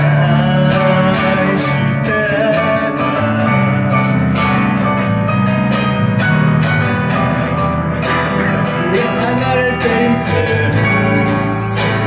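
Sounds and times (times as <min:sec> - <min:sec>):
electric guitar: 0:00.0 - 0:12.0
keyboard: 0:00.0 - 0:12.0
strummed acoustic guitar: 0:00.0 - 0:12.0.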